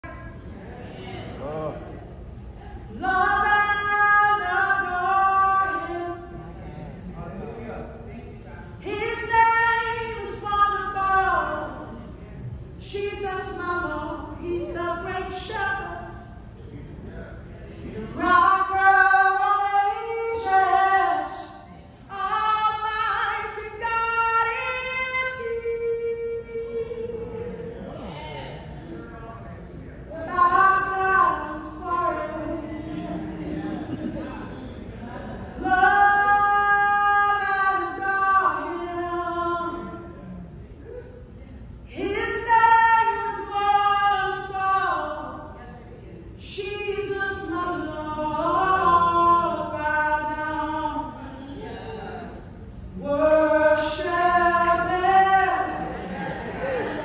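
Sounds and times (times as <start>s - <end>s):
woman singing gospel song: 0.0s - 0.5s, 2.8s - 6.4s, 8.8s - 12.2s, 12.8s - 16.5s, 17.7s - 27.8s, 30.1s - 34.8s, 35.4s - 40.2s, 41.8s - 57.0s.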